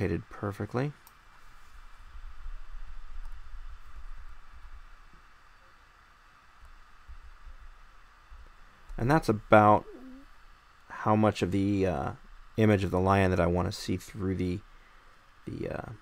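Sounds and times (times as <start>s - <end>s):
room noise hiss: 0.0s - 16.0s.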